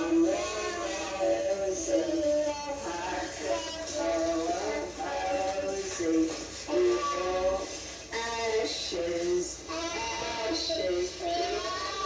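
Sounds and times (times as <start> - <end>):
voices singing through television: 0.0 - 12.0.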